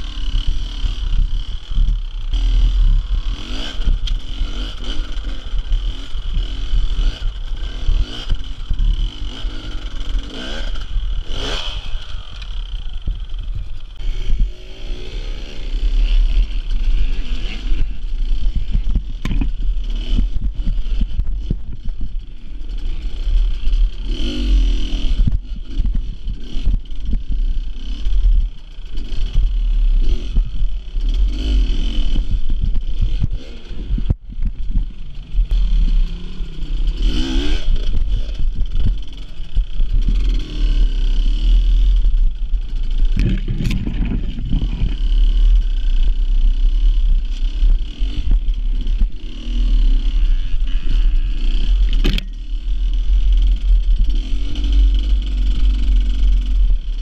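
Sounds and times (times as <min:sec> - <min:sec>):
motorcycle engine revving: 0:00.0 - 0:57.0
wind rumble on microphone: 0:00.0 - 0:57.0.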